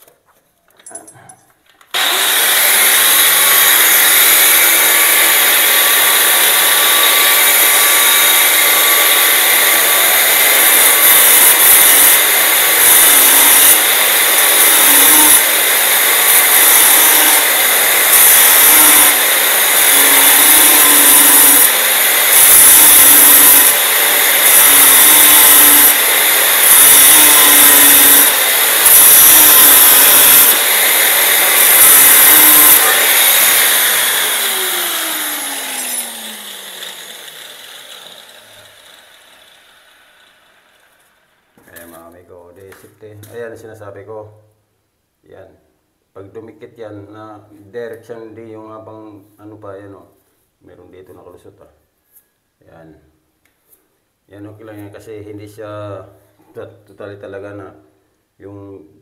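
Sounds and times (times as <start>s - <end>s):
angle grinder cutting metal: 1.9s - 41.2s.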